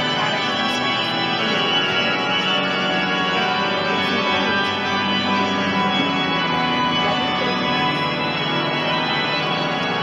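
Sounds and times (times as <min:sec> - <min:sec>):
pipe organ chords: 0:00.0 - 0:10.0.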